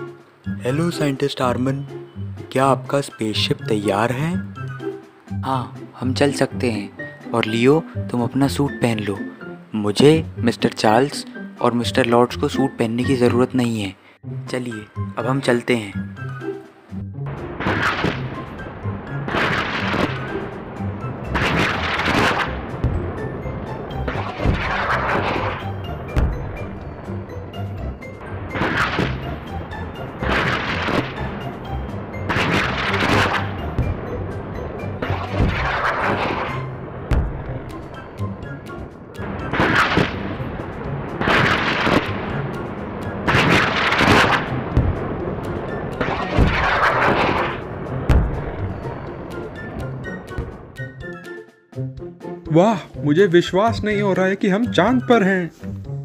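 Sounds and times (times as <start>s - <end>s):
background music: 0.0s - 56.0s.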